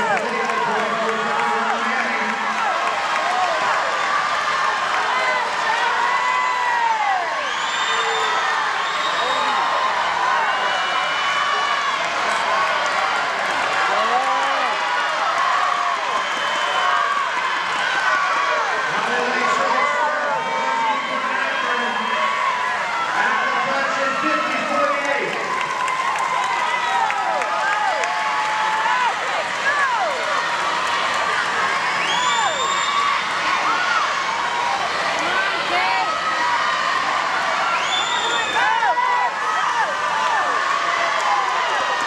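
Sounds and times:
crowd cheering and shouting: 0.0s - 42.0s.

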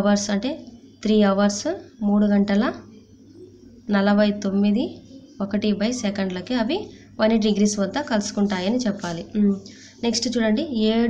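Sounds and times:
woman speaking: 0.0s - 3.0s, 3.8s - 11.0s.

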